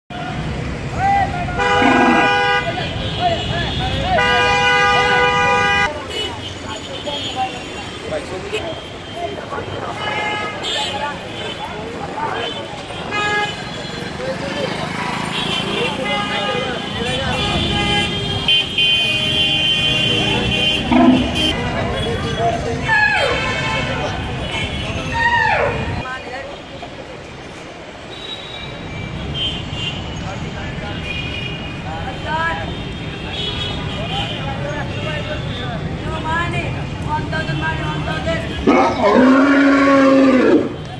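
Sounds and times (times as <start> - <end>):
traffic noise: 0.1 - 40.9
vehicle horns honking: 1.5 - 14.1, 15.1 - 25.2.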